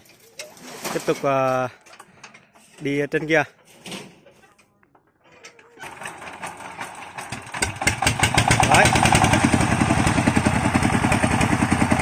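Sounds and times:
diesel engine clatter: 5.8s - 12.0s.

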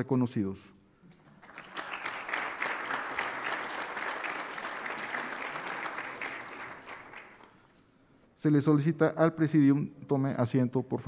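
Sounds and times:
audience applauding: 1.3s - 7.7s.

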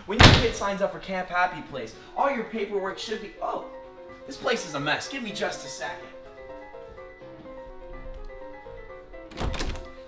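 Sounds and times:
background music: 0.0s - 10.0s
door being pushed open: 0.2s - 0.7s, 9.2s - 10.0s
door handle clunking: 7.4s - 10.0s.

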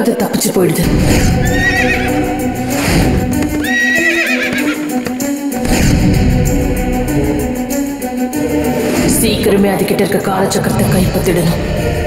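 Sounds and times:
background music: 0.0s - 12.0s
horse whinnying: 1.3s - 5.2s
galloping hoofbeats: 3.0s - 5.6s.

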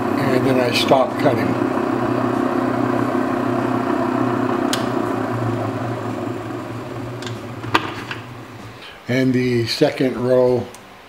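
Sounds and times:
faceting machine humming: 0.0s - 9.6s.

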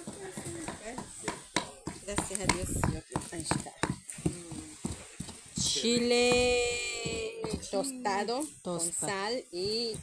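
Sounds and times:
pestle knocking against bowl: 0.0s - 5.0s, 5.6s - 10.0s
people talking: 2.0s - 4.8s, 5.6s - 10.0s.

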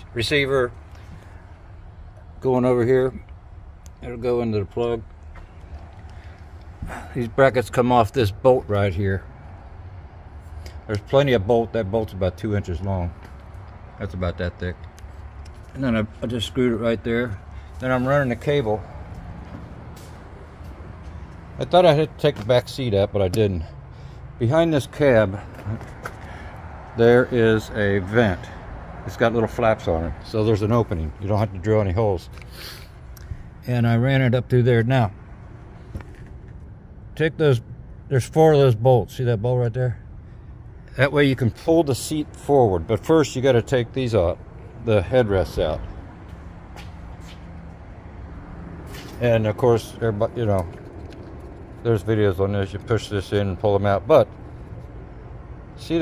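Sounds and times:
vehicle engine idling: 0.0s - 38.8s, 39.4s - 56.0s.

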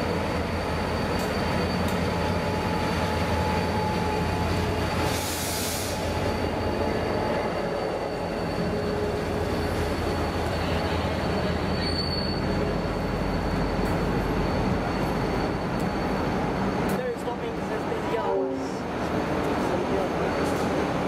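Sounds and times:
train rumbling past: 0.0s - 21.0s
high-pitched wheel squeal: 0.4s - 16.6s.

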